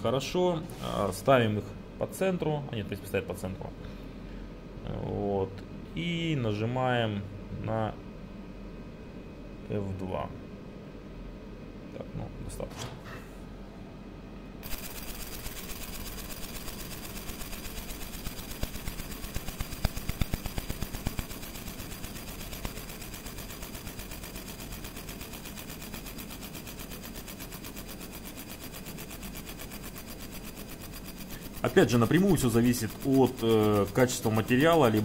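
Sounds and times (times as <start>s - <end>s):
laser engraving crackle: 14.6s - 35.0s.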